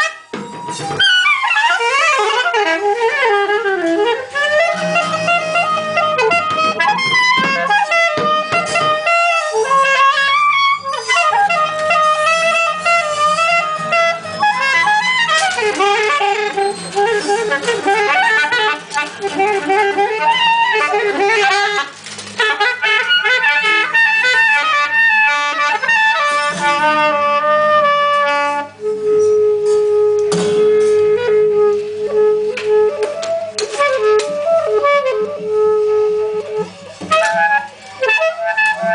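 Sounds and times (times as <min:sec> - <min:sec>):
horns playing wavering tones: 0:00.0 - 0:38.9.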